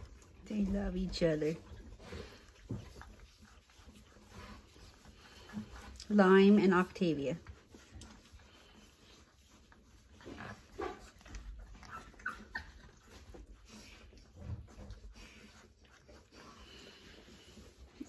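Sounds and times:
puppy whimpering and squeaking: 0:11.3 - 0:13.5.

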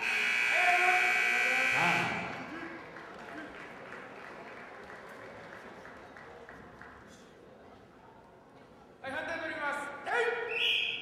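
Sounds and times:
time-up buzzer: 0:00.0 - 0:02.4
man shouting: 0:00.5 - 0:02.2.

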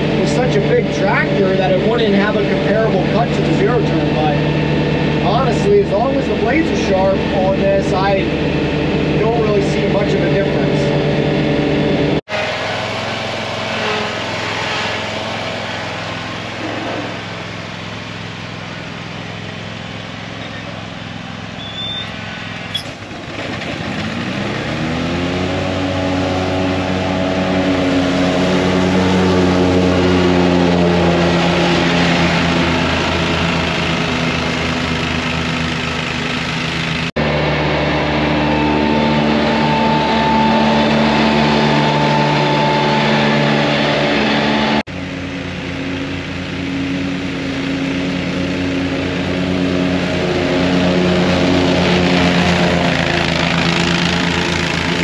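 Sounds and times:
mower deck cutting grass: 0:00.0 - 0:55.0
mower engine running: 0:00.0 - 0:55.0
tractor diesel engine running: 0:00.0 - 0:55.0.

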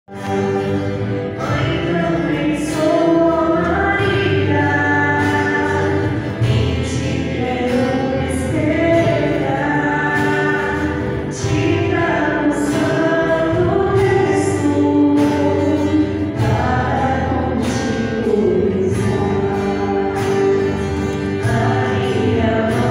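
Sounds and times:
choir singing: 0:00.1 - 0:22.9.

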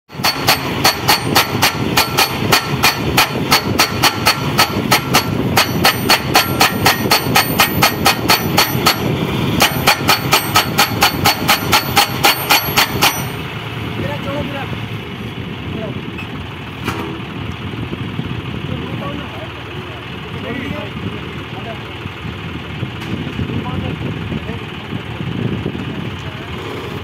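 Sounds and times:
hydraulic hammer pounding metal post: 0:00.1 - 0:13.5
tractor engine running: 0:00.1 - 0:27.0.

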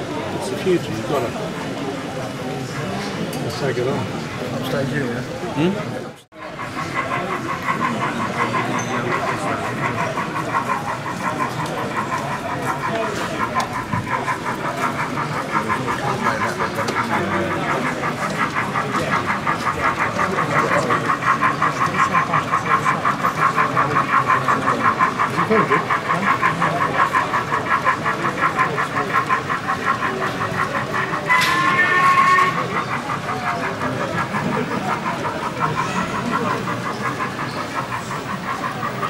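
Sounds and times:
model steam locomotive chuffing: 0:00.0 - 0:39.0.

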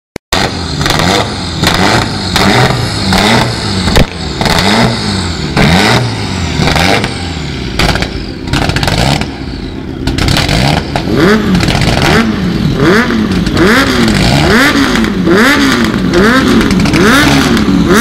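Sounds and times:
car engine revving in blips: 0:00.4 - 0:18.0.

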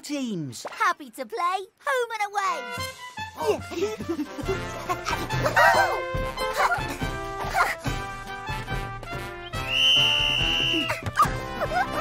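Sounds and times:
upbeat cartoon music: 0:02.2 - 0:12.0
referee's whistle blast: 0:09.6 - 0:10.9.

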